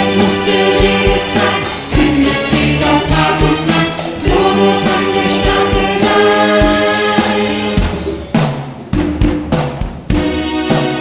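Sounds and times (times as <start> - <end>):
drum kit hits: 0.0 - 11.0.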